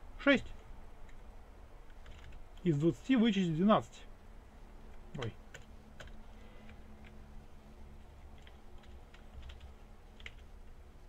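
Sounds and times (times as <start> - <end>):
low steady hum: 0.0 - 11.0
computer keyboard keystrokes: 1.8 - 2.6, 4.9 - 7.2, 8.3 - 10.8.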